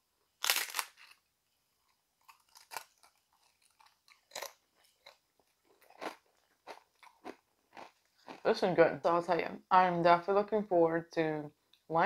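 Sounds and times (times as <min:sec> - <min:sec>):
chip crunching while chewing: 0:00.4 - 0:01.2, 0:01.8 - 0:08.5.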